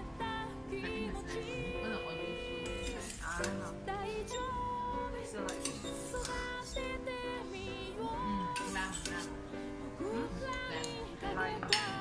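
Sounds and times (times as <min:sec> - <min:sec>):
background music: 0:00.0 - 0:12.0
metal ladle clinking on pot: 0:05.5 - 0:06.4.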